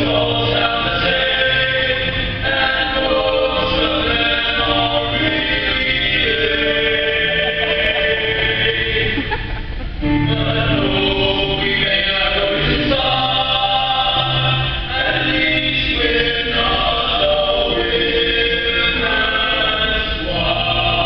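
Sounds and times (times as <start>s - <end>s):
male a cappella harmony singing: 0.0s - 9.4s, 10.0s - 21.0s.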